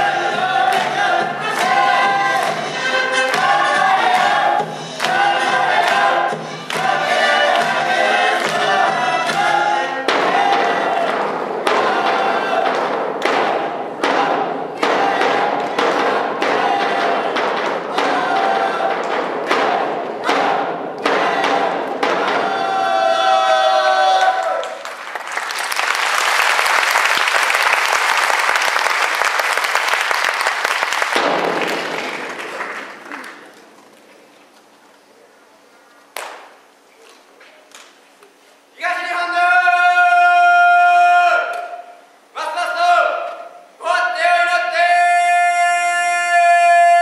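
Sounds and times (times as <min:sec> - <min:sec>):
steady drum beat: 0:00.0 - 0:23.0
cheer squad chanting in unison: 0:00.0 - 0:24.4
audience applause: 0:23.4 - 0:34.0.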